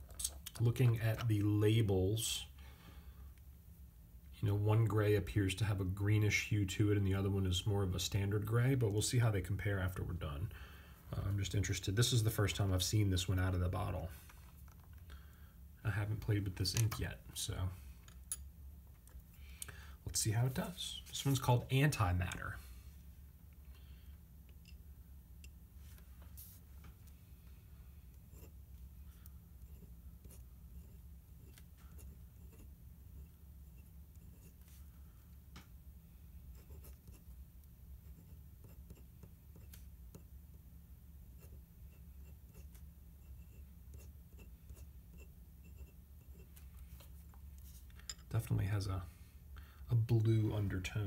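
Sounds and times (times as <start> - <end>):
low steady hum: 0.0 - 51.0
pen nib scratching on paper: 28.1 - 34.8, 36.5 - 37.4, 38.0 - 40.4, 41.3 - 46.7.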